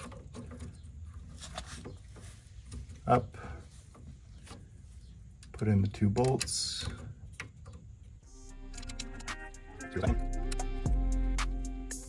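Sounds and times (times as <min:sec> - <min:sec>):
plastic parts clicking and rubbing: 0:00.0 - 0:08.2.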